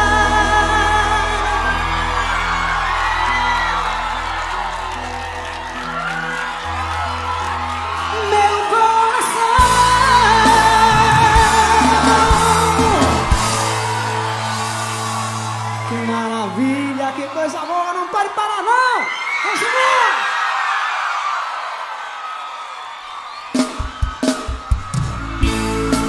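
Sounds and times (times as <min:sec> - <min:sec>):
live band with singing: 0:00.0 - 0:05.3, 0:07.0 - 0:19.9
crowd yelling and cheering: 0:00.0 - 0:26.0.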